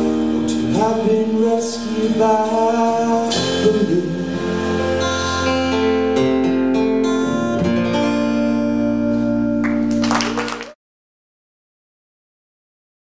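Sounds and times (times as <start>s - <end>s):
drums: 0.0s - 6.7s
acoustic guitar strumming: 0.0s - 10.0s
bass: 0.0s - 10.8s.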